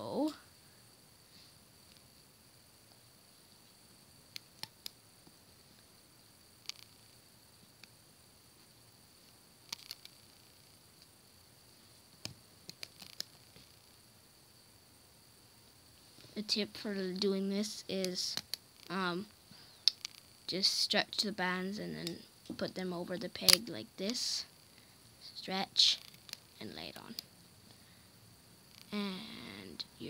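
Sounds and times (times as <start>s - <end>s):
faint steady hiss: 0.0s - 30.0s.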